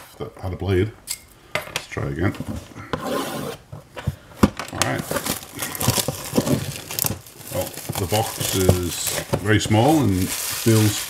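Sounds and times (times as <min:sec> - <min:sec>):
plastic shrink-wrap crinkling and tearing: 0:04.7 - 0:11.0.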